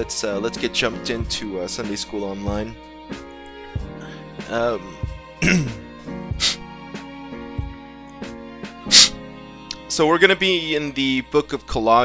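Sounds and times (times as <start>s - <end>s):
man clearing his throat: 5.4s - 5.8s.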